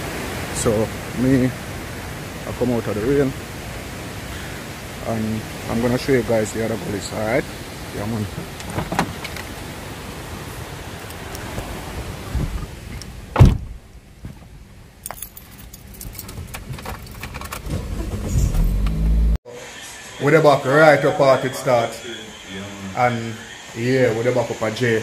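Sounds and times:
rain hiss with small clicks: 0.0s - 13.4s
car engine and tyres on wet road: 0.0s - 19.4s
car door shutting: 8.5s - 9.4s, 12.3s - 14.5s, 16.3s - 19.3s.

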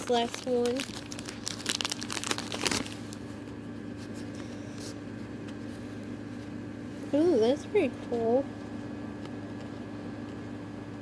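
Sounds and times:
foil wrapper crinkling and tearing: 0.0s - 3.4s
faint steady hum: 0.0s - 11.0s.

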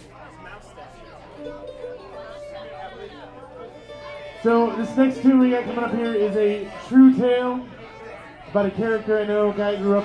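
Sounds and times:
audience chatter: 0.0s - 10.0s.

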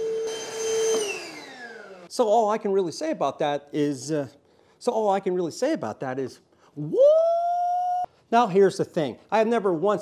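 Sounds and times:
vacuum motor whining and winding down: 0.0s - 2.1s.

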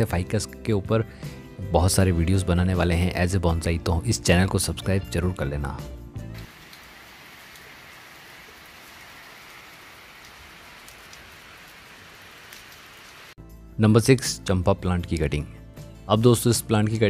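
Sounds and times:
rain falling on standing water: 6.4s - 13.4s.

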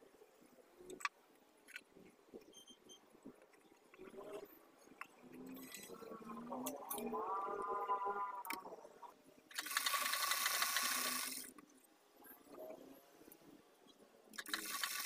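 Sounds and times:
sewing machine stitching: 9.5s - 11.5s, 14.4s - 15.0s.

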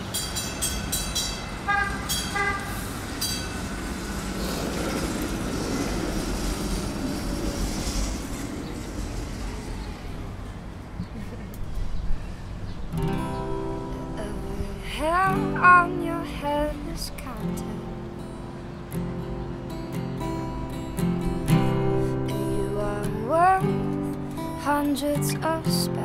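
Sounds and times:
vehicle passing: 0.0s - 14.8s
street traffic: 0.0s - 26.0s
guitar playing: 12.9s - 26.0s.

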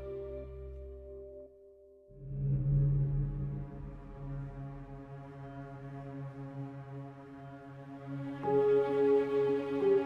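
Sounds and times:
low droning film score chord: 0.0s - 10.0s.

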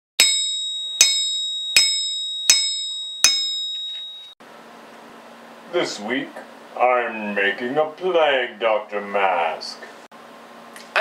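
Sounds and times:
bell-like metallic strikes: 0.2s - 4.4s.

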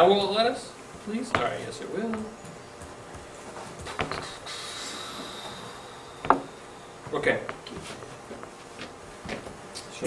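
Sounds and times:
faint high-pitched whine: 3.9s - 8.2s.

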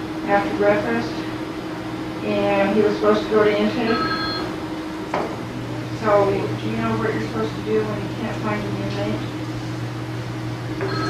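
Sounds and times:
low electrical hum: 0.0s - 11.0s
voice: 0.2s - 1.4s, 2.2s - 4.1s, 5.9s - 9.4s.

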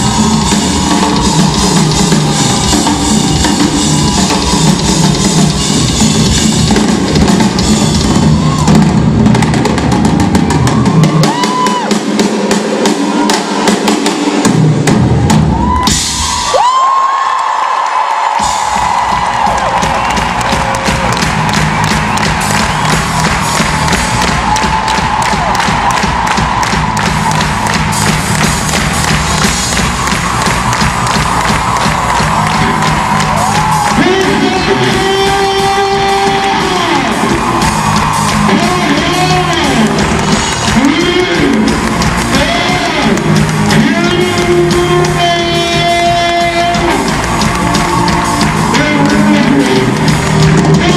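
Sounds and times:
rock drum kit through pa: 0.0s - 17.1s, 18.2s - 50.9s.

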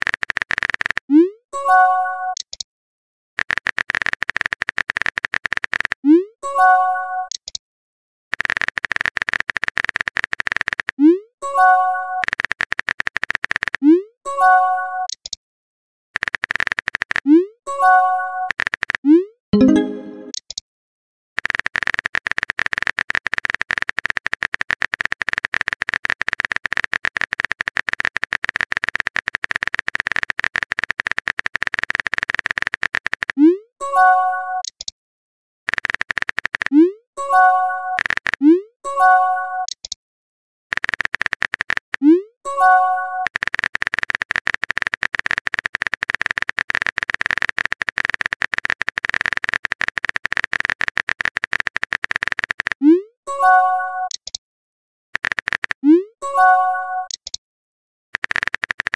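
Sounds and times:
phone keyboard typing clicks: 0.0s - 1.1s, 2.4s - 2.6s, 3.4s - 6.0s, 7.3s - 7.6s, 8.3s - 11.0s, 12.2s - 13.8s, 15.1s - 15.4s, 16.2s - 17.3s, 18.4s - 19.0s, 21.4s - 33.4s, 34.6s - 34.9s, 35.7s - 38.6s, 39.6s - 40.0s, 40.7s - 42.1s, 43.2s - 52.8s, 54.1s - 54.4s, 55.2s - 56.0s, 57.0s - 57.4s, 58.2s - 58.9s
phone keyboard key clicks: 3.4s - 6.0s, 34.6s - 34.9s, 35.7s - 36.7s, 40.7s - 41.9s, 43.3s - 52.8s, 54.1s - 54.4s, 55.2s - 55.8s, 57.1s - 57.4s.

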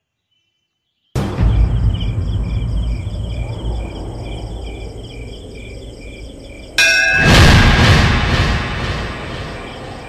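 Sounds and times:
insects chirping: 0.0s - 10.0s
low rumble: 1.2s - 10.0s.

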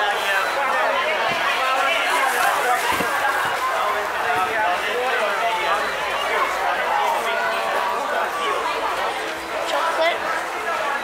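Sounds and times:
crowd chatter at a market: 0.0s - 11.0s.

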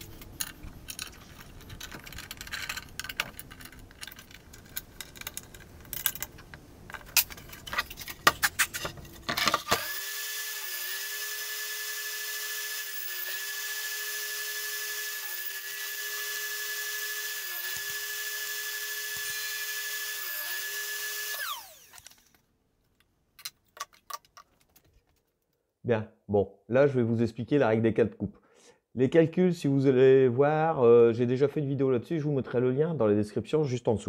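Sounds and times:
table saw motor whining: 9.6s - 22.3s.

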